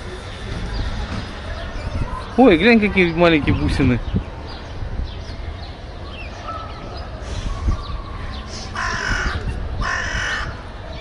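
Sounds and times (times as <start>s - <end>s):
harsh drawn-out bird calls: 3.0s - 11.0s.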